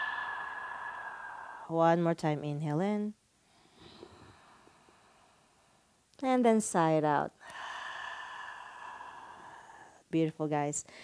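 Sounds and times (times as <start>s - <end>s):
woman's breathy sigh: 0.0s - 1.8s, 7.4s - 10.1s.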